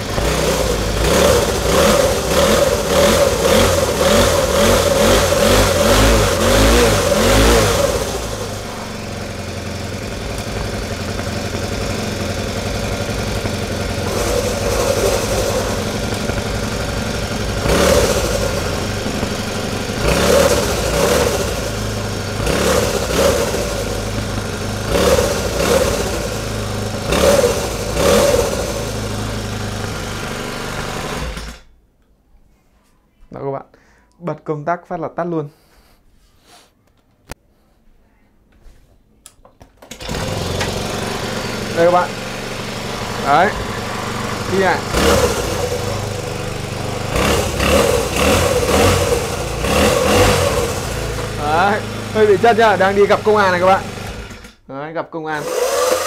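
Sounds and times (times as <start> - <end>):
small petrol engine revving: 0.0 - 31.8, 39.8 - 56.0.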